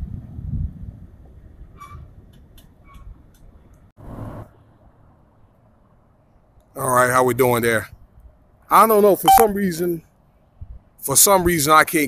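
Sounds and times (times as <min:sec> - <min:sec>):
wind noise: 0:00.0 - 0:03.8, 0:10.5 - 0:11.0
traffic rumble: 0:01.0 - 0:12.0.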